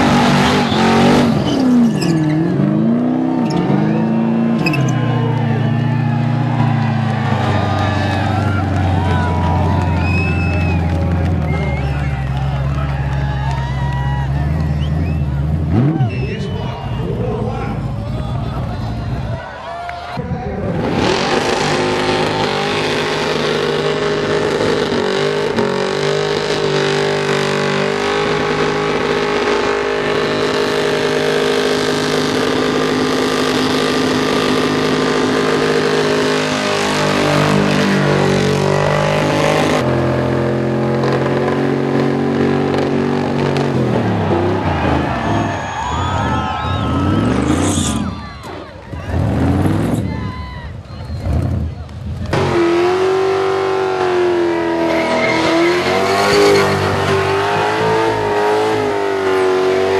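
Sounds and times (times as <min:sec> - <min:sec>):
car engine revving high: 0:00.0 - 0:19.2, 0:20.6 - 0:48.3, 0:48.9 - 0:50.2, 0:51.2 - 0:59.9.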